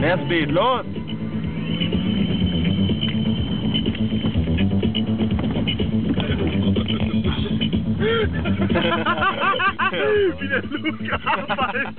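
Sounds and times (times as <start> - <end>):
car humming: 0.0 - 11.9.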